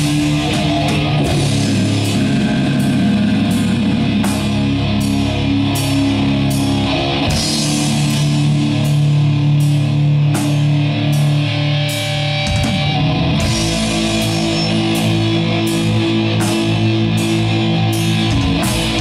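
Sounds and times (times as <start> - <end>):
bass guitar: 0.0 - 19.0
distorted electric guitars: 0.0 - 19.0
drums: 0.0 - 19.0.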